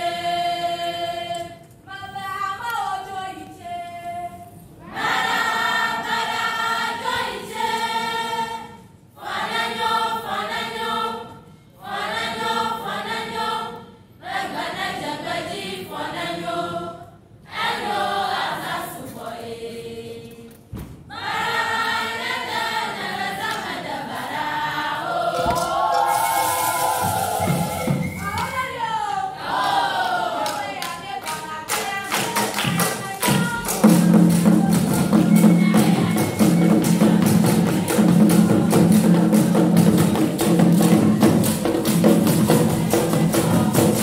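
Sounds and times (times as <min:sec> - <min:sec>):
group singing in chorus: 0:00.0 - 0:28.2, 0:29.3 - 0:44.0
people clapping: 0:30.0 - 0:35.1.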